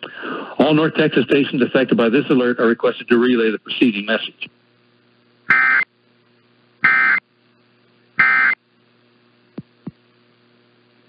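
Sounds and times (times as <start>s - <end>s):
steady hum: 0.0s - 11.0s
buzzy digital data tones: 5.5s - 5.9s, 6.8s - 7.2s, 8.2s - 8.6s.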